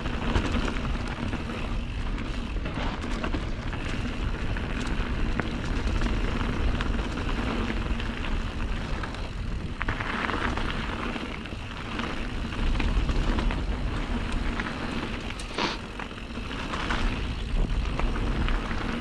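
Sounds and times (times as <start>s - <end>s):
bike ticks and rattles: 0.0s - 19.0s
mountain bike on dirt trail: 0.0s - 19.0s
wind rumbling on microphone: 0.0s - 19.0s.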